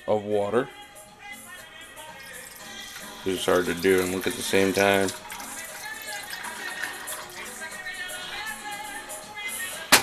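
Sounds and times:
faint background music with singing: 0.0 - 10.0
water pouring into metal saucepan: 2.2 - 8.8.

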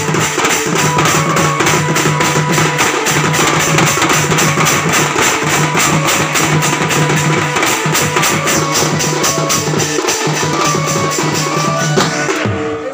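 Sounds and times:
stick-beaten drums: 0.0 - 12.9.

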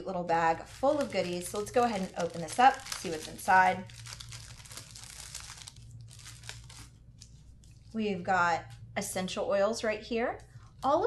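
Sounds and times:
plastic bag crinkling: 0.4 - 8.0.

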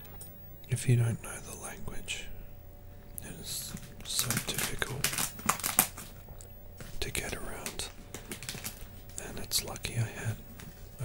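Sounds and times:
soft whispering: 0.7 - 2.5, 3.2 - 5.2, 6.9 - 8.0, 9.2 - 11.0
popcorn being chewed: 3.2 - 10.0
crinkling: 3.2 - 11.0.

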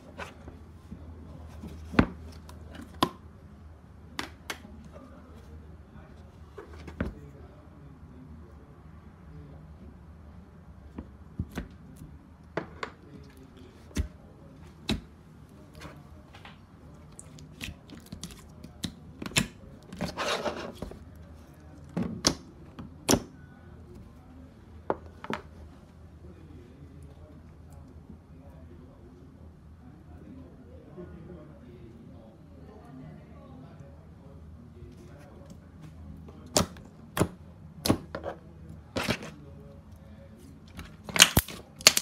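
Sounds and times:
slime squishing: 16.8 - 23.3, 36.4 - 39.4, 40.3 - 42.0
slime clicking and popping: 41.1 - 42.0.

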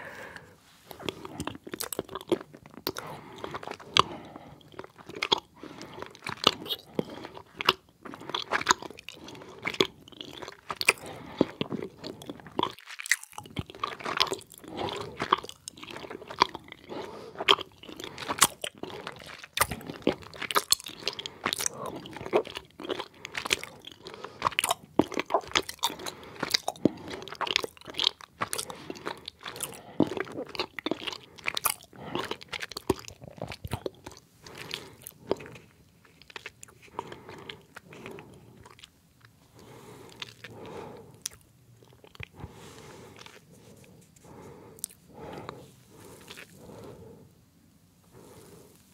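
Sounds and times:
chewing gummy candies: 0.9 - 47.3.

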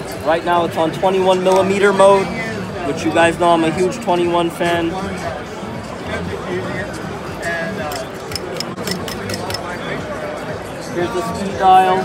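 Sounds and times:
music: 0.0 - 12.0
distant chatter: 5.2 - 11.0.

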